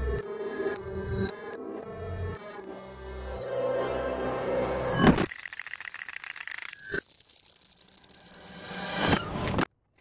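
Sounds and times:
fast even cartoon rattle: 5.2 - 9.0.

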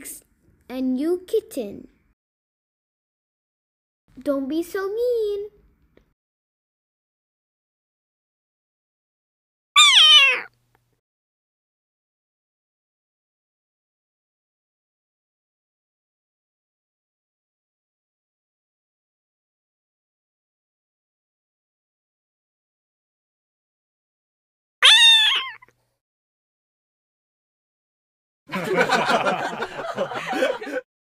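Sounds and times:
cat meowing: 9.8 - 10.5, 24.8 - 25.6.

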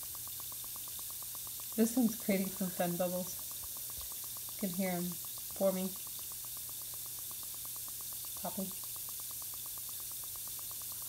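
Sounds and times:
bubbles ticking: 0.0 - 11.0
faint hiss: 0.0 - 11.0.

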